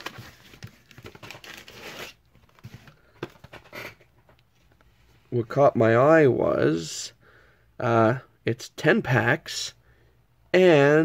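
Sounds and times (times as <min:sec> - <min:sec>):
cardboard rustling and scraping: 0:00.0 - 0:04.7.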